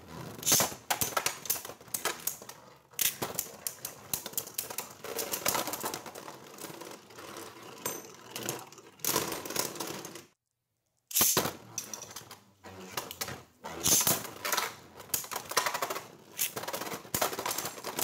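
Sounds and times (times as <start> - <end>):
spinning tops clattering: 13.8 - 18.0.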